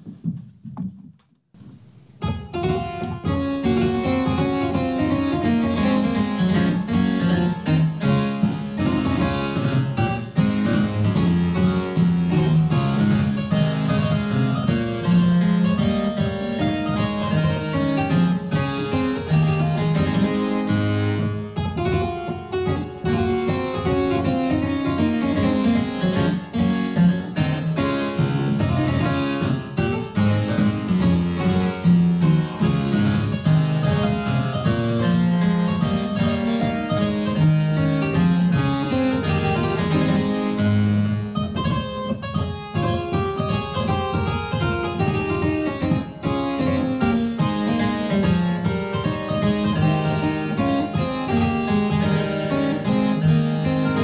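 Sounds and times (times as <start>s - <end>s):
solo harpsichord dance: 2.0s - 54.0s.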